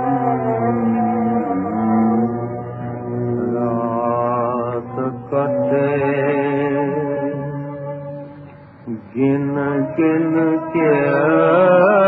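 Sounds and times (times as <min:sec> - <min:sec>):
old film song recording: 0:00.0 - 0:12.0.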